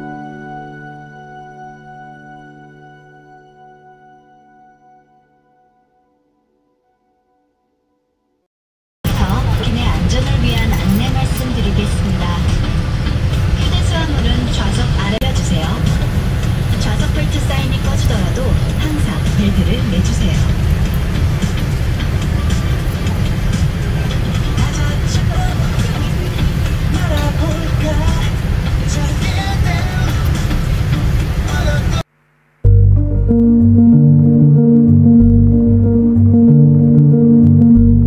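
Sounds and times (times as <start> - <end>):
airliner cabin low rumble: 9.1 - 32.0
faint song playing: 9.1 - 32.1.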